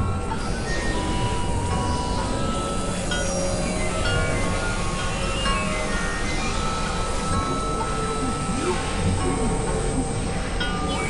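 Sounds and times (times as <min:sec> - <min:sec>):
scattered electronic tones: 0:00.0 - 0:11.0
synthesizer noise wash: 0:00.0 - 0:11.0.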